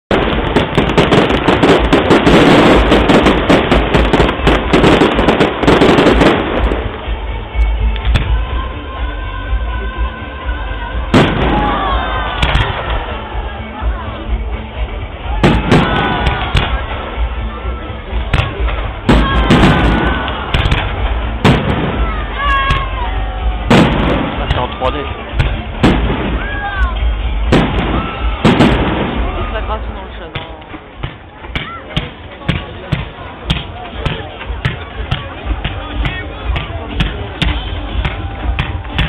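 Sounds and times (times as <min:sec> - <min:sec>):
fireworks bursting with sharp bangs: 0:00.0 - 0:09.0, 0:10.8 - 0:39.0
voices in background: 0:08.8 - 0:39.0.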